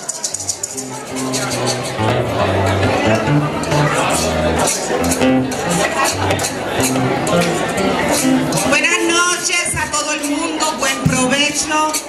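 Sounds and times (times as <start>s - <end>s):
hand percussion beat: 0.0s - 8.9s
acoustic guitars: 0.0s - 12.0s
bass line: 0.8s - 8.8s.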